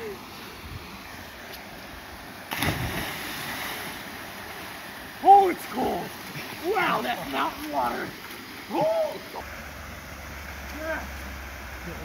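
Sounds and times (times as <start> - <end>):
small waterfall rushing: 0.0 - 12.0
big splash into water: 2.5 - 4.1.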